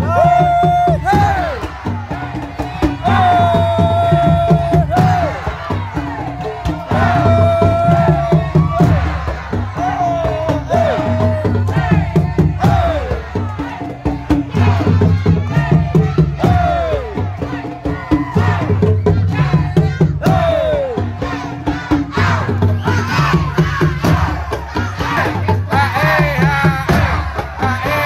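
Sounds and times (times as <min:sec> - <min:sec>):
crowd noise: 0:00.0 - 0:28.0
drum ensemble fast rhythm: 0:00.0 - 0:28.0
group shouting sliding calls: 0:00.0 - 0:28.0.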